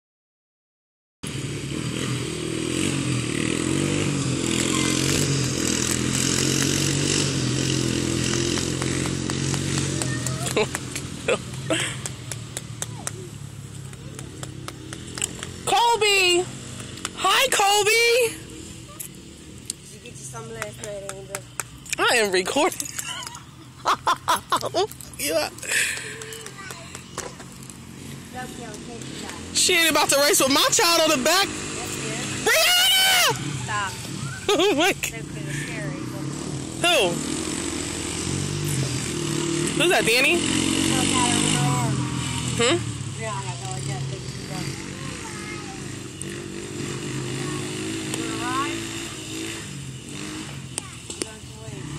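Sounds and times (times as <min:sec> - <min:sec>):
small atv engine running: 0:01.2 - 0:51.9
faint voices: 0:39.8 - 0:49.8.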